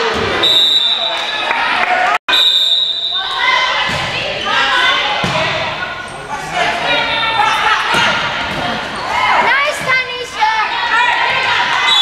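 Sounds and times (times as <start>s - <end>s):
people calling and shouting in a gym: 0.0s - 12.0s
volleyball hits: 3.7s - 4.3s, 5.1s - 5.8s.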